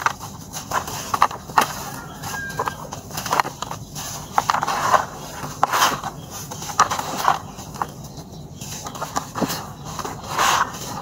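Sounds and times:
dry dirt crunching by hand: 0.0s - 11.0s.

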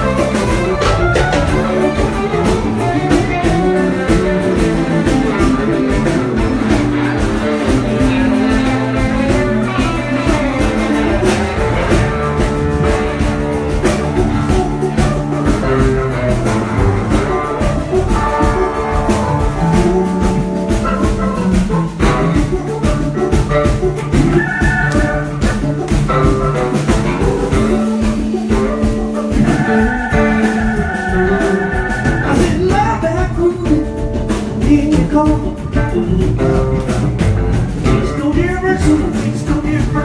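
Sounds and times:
drum kit beat: 0.0s - 40.0s
electric bass: 0.0s - 40.0s
electric guitar: 0.0s - 40.0s.

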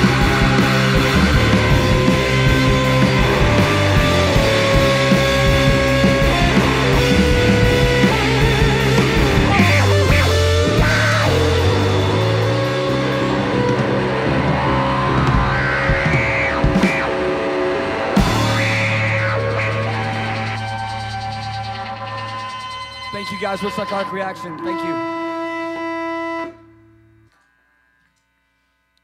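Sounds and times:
rock band droning notes: 0.0s - 28.4s
sliding whining guitar tones: 0.0s - 28.9s.

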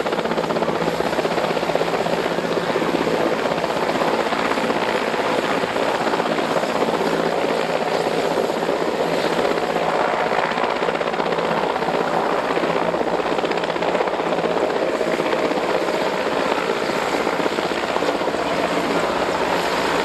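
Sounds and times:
helicopter hovering: 0.0s - 20.0s.

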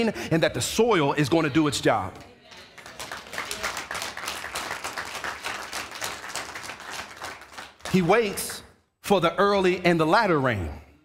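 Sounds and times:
congregation applauding: 2.5s - 8.7s.

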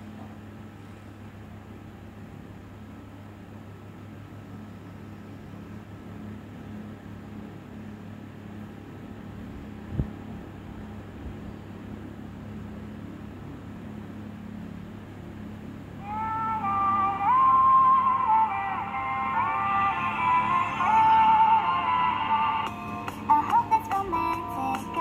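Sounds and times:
room hum and hiss: 0.0s - 25.0s.

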